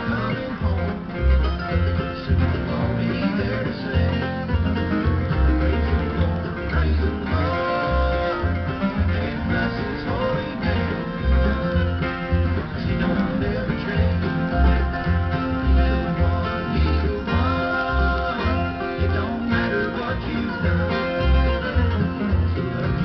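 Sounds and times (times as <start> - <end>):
acoustic guitar flatpicked: 0.0 - 23.0
bluegrass band on radio: 0.0 - 23.0
steady bass beat: 0.0 - 23.0.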